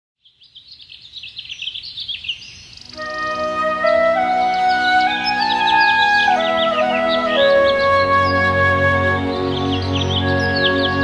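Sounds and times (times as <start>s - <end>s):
birds chirping: 0.2s - 11.0s
music with held notes: 2.9s - 11.0s.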